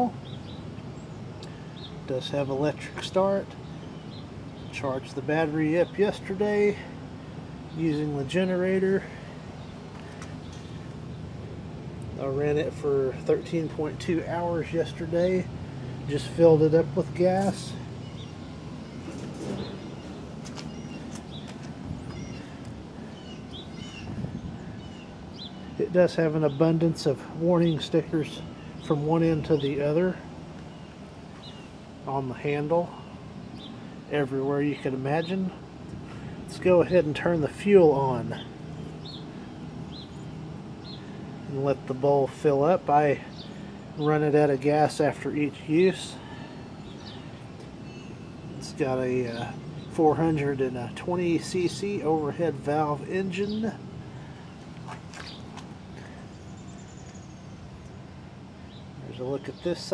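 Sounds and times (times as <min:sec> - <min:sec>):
low background hum: 0:00.0 - 0:59.9
low outdoor rumble: 0:00.0 - 0:59.9
small birds chirping: 0:00.0 - 0:59.9.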